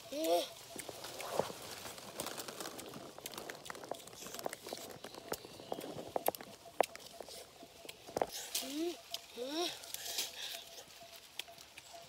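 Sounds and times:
rustle of dry leaves: 0.0s - 12.0s.

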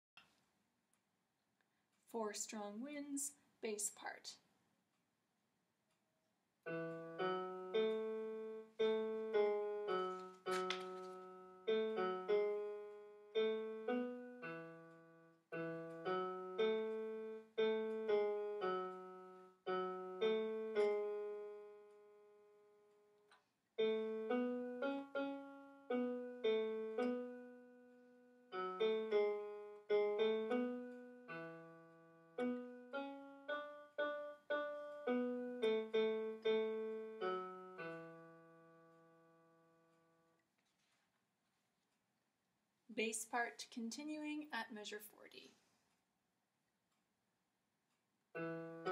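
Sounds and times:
electronic piano single notes: 6.7s - 22.1s, 23.8s - 27.8s, 28.5s - 39.3s, 48.4s - 48.9s.

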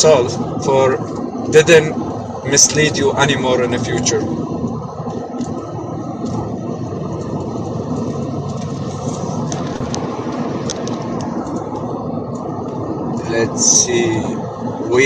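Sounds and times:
low rumbling noise: 0.0s - 15.0s.

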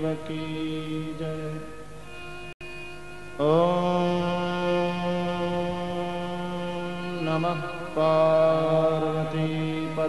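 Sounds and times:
mantra chanting on a droning note: 0.0s - 1.9s, 3.3s - 10.0s.

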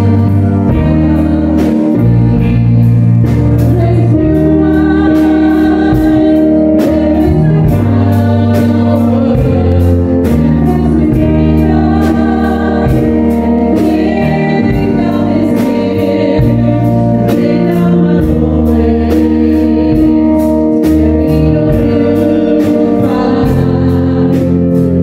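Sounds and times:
drum kit steady beat: 0.0s - 25.0s
electric guitar: 0.0s - 25.0s
keyboard: 0.0s - 25.0s
voices singing: 0.0s - 25.0s.

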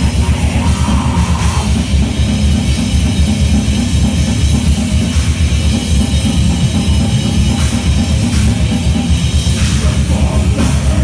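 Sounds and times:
distorted guitar: 0.0s - 11.0s
fast drumming: 0.0s - 11.0s.

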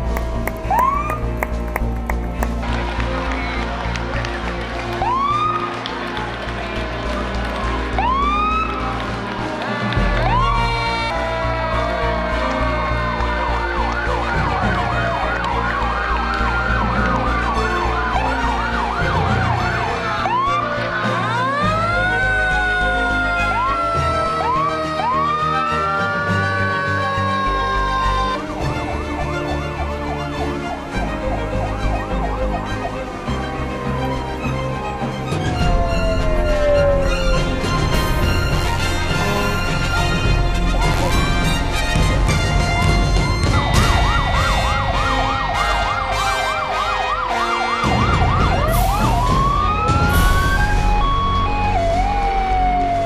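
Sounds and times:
fire engine siren: 0.0s - 53.0s
music: 0.0s - 53.0s
truck engines rumbling: 0.0s - 53.0s.

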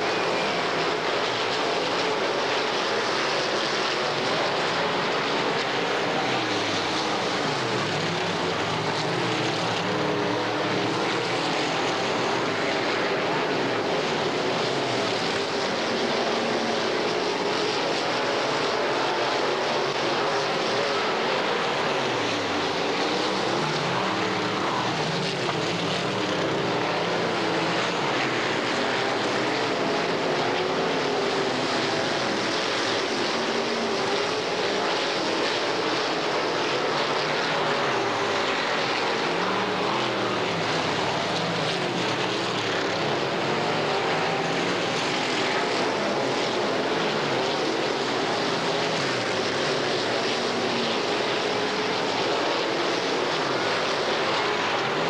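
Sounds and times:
race car engines racing: 0.0s - 55.0s.

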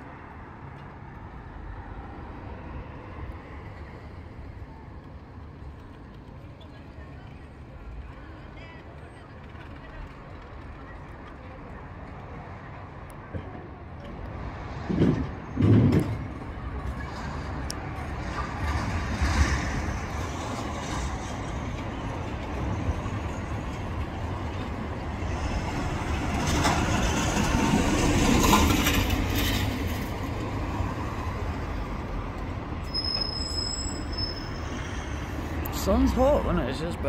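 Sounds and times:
traffic rumble: 0.0s - 37.0s.

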